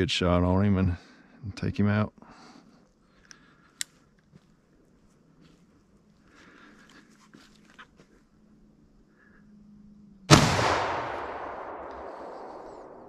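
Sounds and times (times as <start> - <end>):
rifle shot: 10.3 - 13.0.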